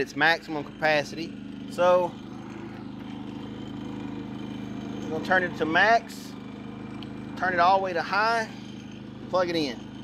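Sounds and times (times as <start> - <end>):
generator engine humming: 0.0 - 10.0.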